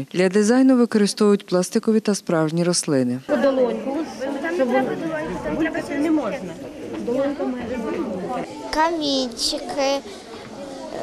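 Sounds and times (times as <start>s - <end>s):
children chattering: 3.3s - 11.0s.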